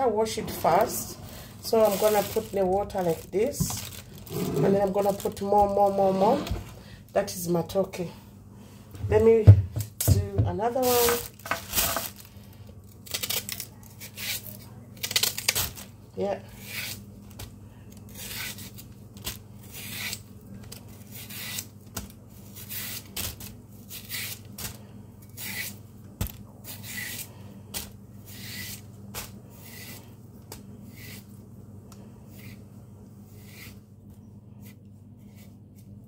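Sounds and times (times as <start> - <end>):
knife scraping banana skin: 13.1 - 15.4, 16.5 - 17.0, 18.1 - 18.9, 19.6 - 20.3, 20.9 - 21.7, 22.4 - 24.6, 25.2 - 25.8, 26.6 - 27.4, 28.2 - 30.1, 30.8 - 31.3, 32.3 - 32.6, 33.3 - 33.8.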